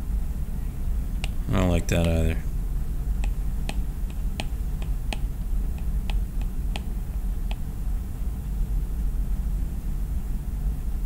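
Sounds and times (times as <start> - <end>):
low steady hum: 0.0 - 11.0
taps on glass screen: 4.4 - 6.9.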